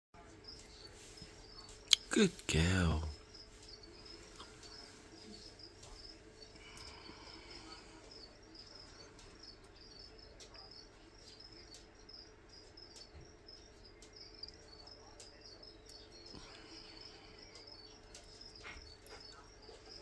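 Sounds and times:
crickets chirping: 0:00.2 - 0:20.0.

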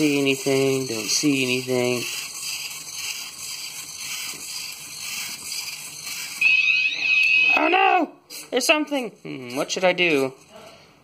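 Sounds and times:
loud high buzzer beep: 0:06.4 - 0:07.7.

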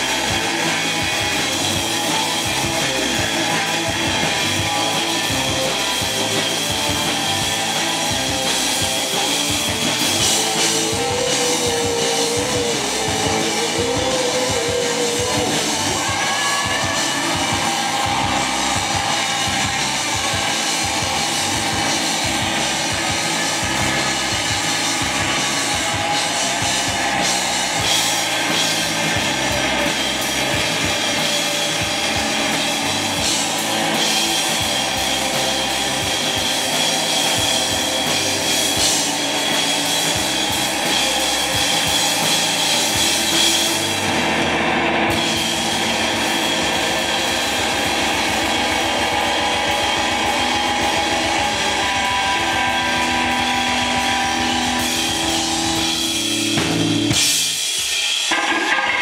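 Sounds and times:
bass guitar: 0:00.0 - 0:59.0
drums: 0:00.0 - 0:59.0
electric guitar: 0:00.0 - 0:59.0.

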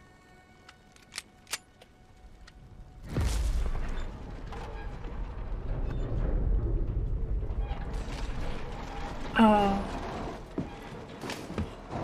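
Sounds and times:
handgun clicks: 0:00.6 - 0:01.9.

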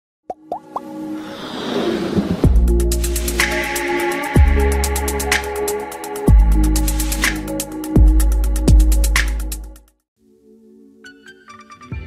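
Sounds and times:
electronic music swell: 0:00.6 - 0:09.1.

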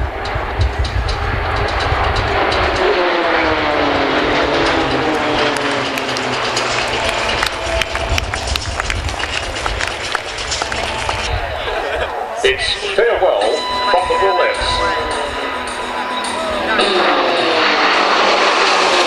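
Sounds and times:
low rumbling noise: 0:00.0 - 0:19.0
propeller aircraft passing overhead: 0:00.0 - 0:19.0.

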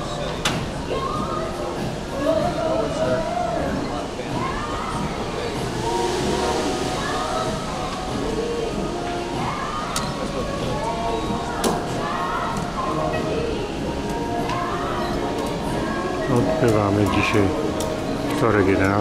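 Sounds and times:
indistinct voices: 0:00.0 - 0:19.0
music: 0:00.0 - 0:19.0
steady background hum: 0:00.0 - 0:19.0.

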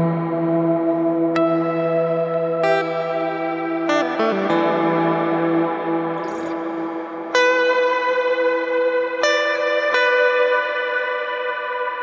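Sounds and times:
electric guitar chord ringing: 0:00.0 - 0:12.0.

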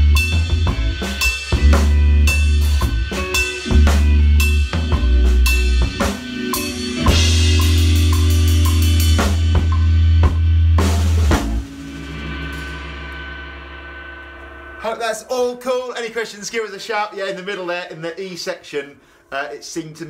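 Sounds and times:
backing track with bass: 0:00.0 - 0:16.9
drum kit groove: 0:00.0 - 0:20.0
crash cymbal ringing: 0:11.6 - 0:16.7.

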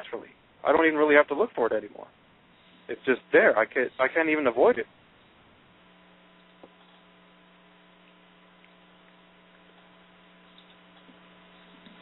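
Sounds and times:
faint electrical hum with hiss: 0:00.0 - 0:12.0.

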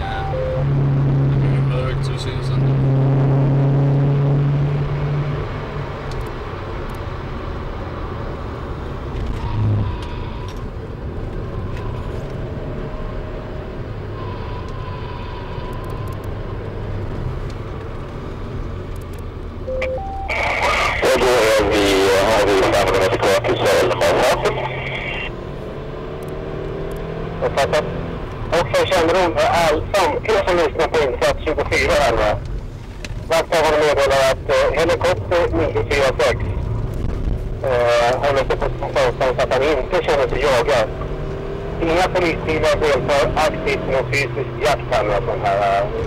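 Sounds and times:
two-tone beep: 0:00.0 - 0:00.7, 0:19.7 - 0:21.0
car engine drone: 0:00.0 - 0:46.0
road noise: 0:00.0 - 0:46.0
voice over police radio: 0:20.2 - 0:25.3, 0:27.4 - 0:27.9, 0:28.5 - 0:32.4, 0:33.3 - 0:36.6, 0:37.6 - 0:41.0, 0:41.8 - 0:46.0.

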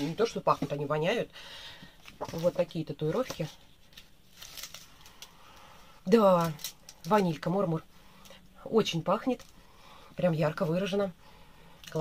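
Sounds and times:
paper sheet rustling: 0:02.0 - 0:05.3.

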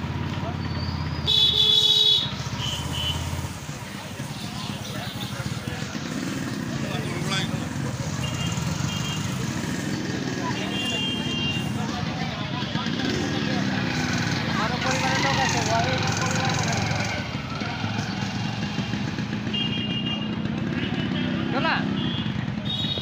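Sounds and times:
motorcycle engine running: 0:00.0 - 0:23.0
loud vehicle horn honking: 0:01.3 - 0:03.4, 0:08.2 - 0:09.4, 0:10.5 - 0:11.8, 0:19.4 - 0:23.0.

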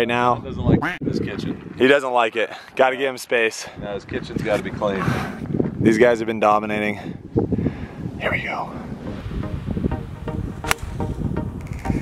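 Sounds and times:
golf club striking ball: 0:10.6 - 0:11.1.

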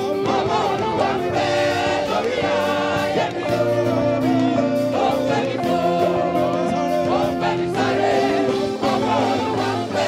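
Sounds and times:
group singing gospel: 0:00.0 - 0:10.0.

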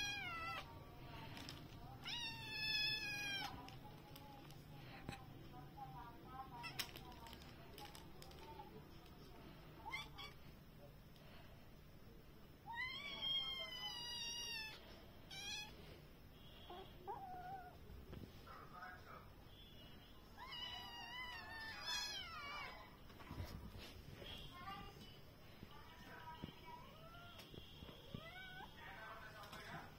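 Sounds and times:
kitten meowing: 0:02.0 - 0:03.6.

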